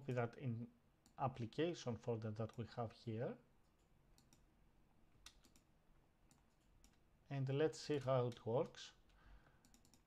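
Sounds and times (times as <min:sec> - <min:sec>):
computer mouse clicks: 0:03.8 - 0:04.5, 0:05.2 - 0:05.7, 0:06.3 - 0:07.0, 0:09.6 - 0:10.0.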